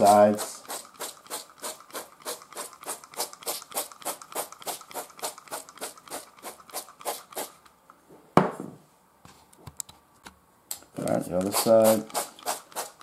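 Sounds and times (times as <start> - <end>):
oil sprayer hissing: 0.0 - 7.6.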